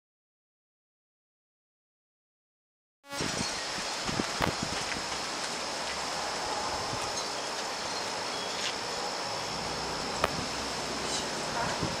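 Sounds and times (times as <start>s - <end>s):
steady rain hiss: 3.1s - 12.0s
thin high steady tone: 3.1s - 12.0s.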